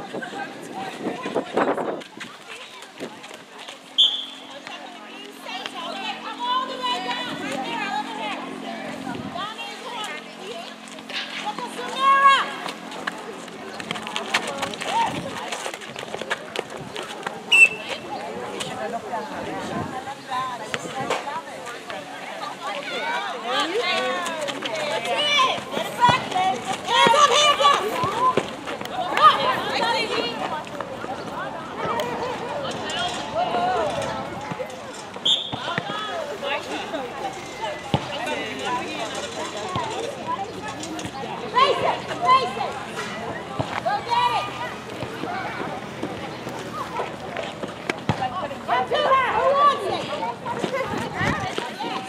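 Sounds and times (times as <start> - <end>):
people calling out: 22.8 - 30.6
children shouting: 25.0 - 30.4.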